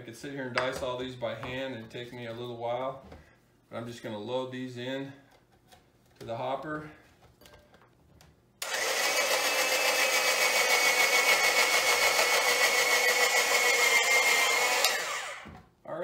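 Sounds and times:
electric slicer motor whining: 8.6 - 15.5.

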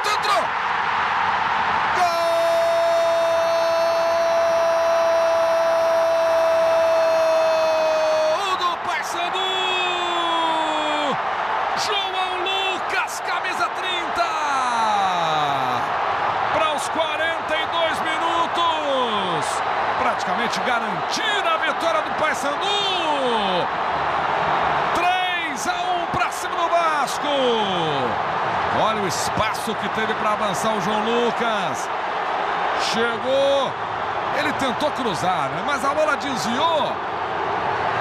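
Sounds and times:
stadium crowd noise: 0.0 - 38.0.

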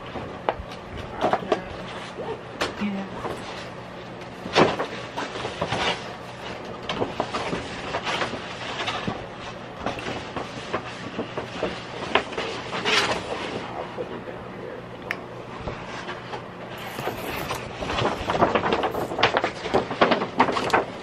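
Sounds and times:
paper rustling and crackling: 3.2 - 13.7, 16.8 - 21.0.

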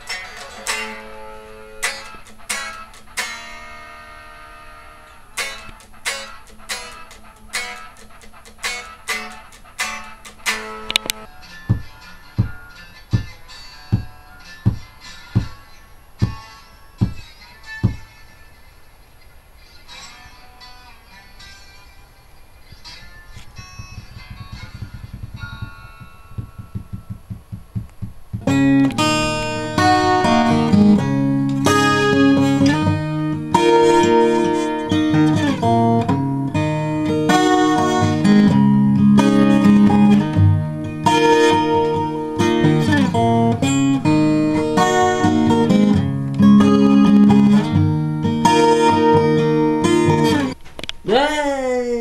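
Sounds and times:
electric guitar chord ringing: 0.0 - 18.6, 19.7 - 27.2, 28.4 - 50.6
soft low thumps: 23.4 - 30.3.

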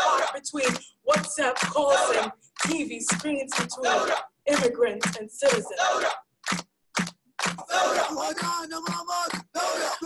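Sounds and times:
voices: 0.0 - 6.2.

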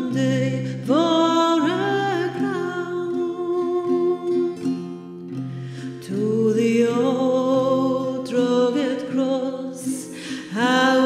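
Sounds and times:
plucked acoustic guitar: 0.0 - 11.0
woman singing: 0.0 - 11.0.

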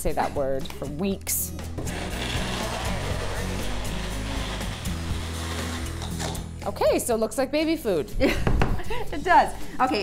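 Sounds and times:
blender running: 1.8 - 6.4.

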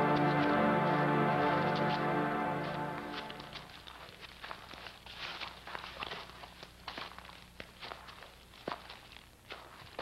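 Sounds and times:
footsteps on grass and earth: 0.0 - 10.0.

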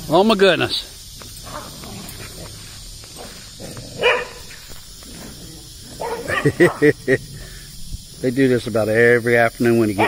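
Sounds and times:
dog barking: 4.0 - 4.5, 6.0 - 6.9.

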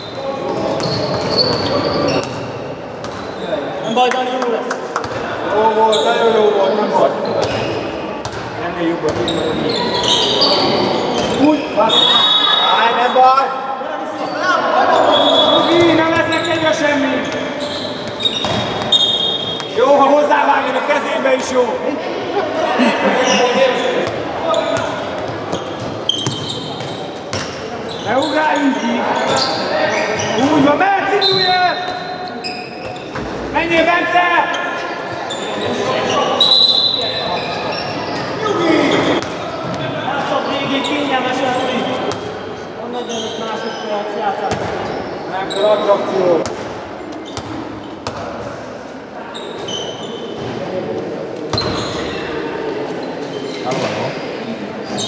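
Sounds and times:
players calling out: 14.0 - 47.7.

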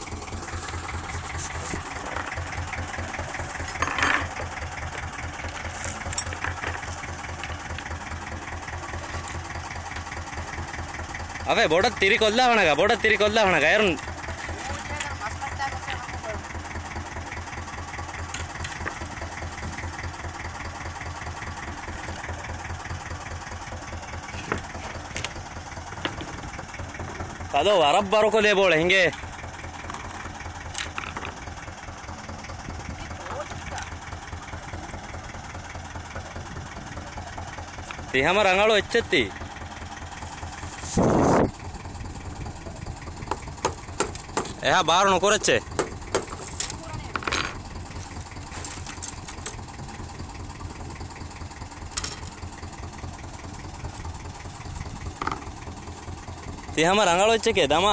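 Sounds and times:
boat engine idling: 0.0 - 57.9.

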